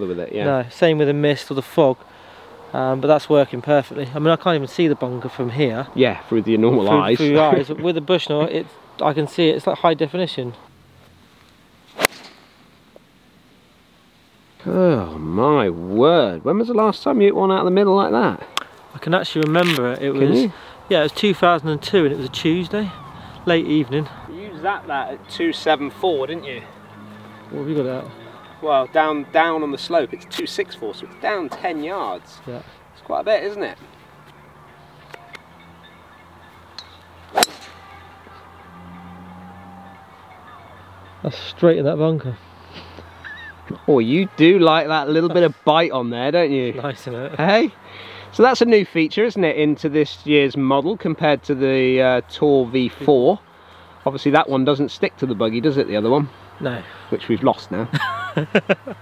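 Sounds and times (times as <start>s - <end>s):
faint open-air background: 0.0s - 59.0s
golf club striking ball: 12.0s - 12.5s, 36.8s - 37.8s.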